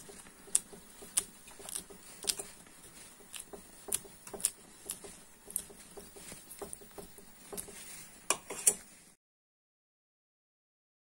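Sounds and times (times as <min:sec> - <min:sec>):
metal fork scraping wax: 0:00.0 - 0:08.9.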